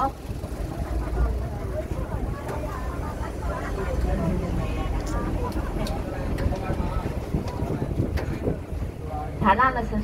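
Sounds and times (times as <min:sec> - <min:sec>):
people talking: 0:00.0 - 0:08.6, 0:09.2 - 0:10.0
tram rumbling along: 0:00.0 - 0:10.0.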